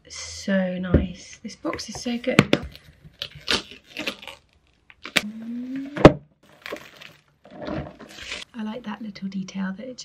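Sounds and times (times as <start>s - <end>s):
packaging rustling: 6.4s - 8.5s.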